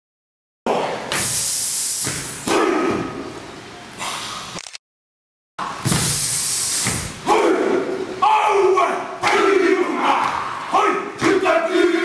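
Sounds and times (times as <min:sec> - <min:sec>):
men's forceful hissing breath: 0:01.2 - 0:02.5, 0:05.9 - 0:07.2
men's gruff shout: 0:07.2 - 0:12.0.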